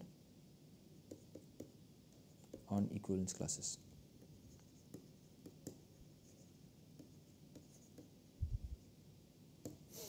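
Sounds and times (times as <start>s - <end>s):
stylus scratching and tapping: 1.0s - 3.4s, 4.2s - 8.2s.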